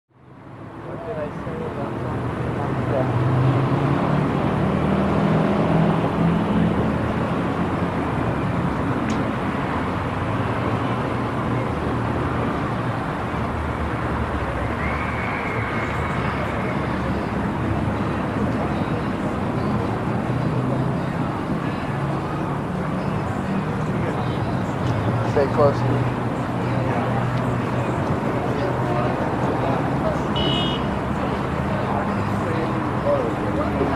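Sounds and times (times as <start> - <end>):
street traffic noise: 0.1 - 33.9
people chattering: 0.2 - 33.9.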